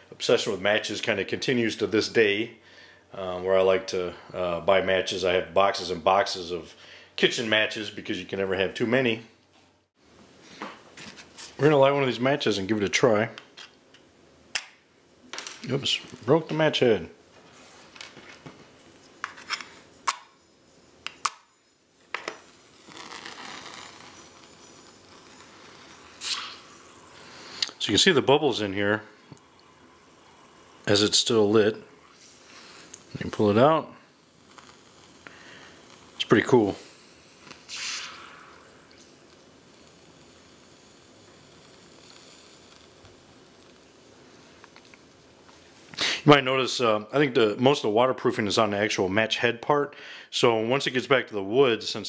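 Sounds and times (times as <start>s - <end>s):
match burning with hiss: 18.8s - 46.4s
match hissing in water: 21.1s - 46.3s
match scraping on striker: 22.2s - 27.8s, 34.4s - 45.2s.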